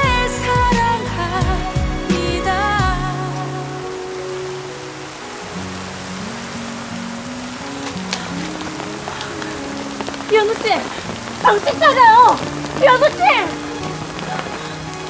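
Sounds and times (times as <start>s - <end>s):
heavy rain on pavement: 0.0s - 15.0s
slow low background music: 0.0s - 15.0s.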